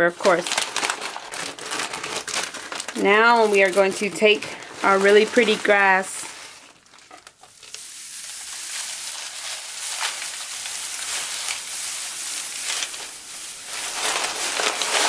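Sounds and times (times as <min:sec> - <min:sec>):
plastic grass crinkling: 0:00.0 - 0:15.0.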